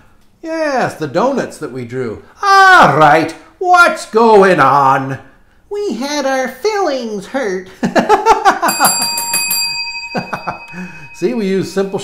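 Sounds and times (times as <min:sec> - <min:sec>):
bell strike ringing: 0:08.7 - 0:12.0.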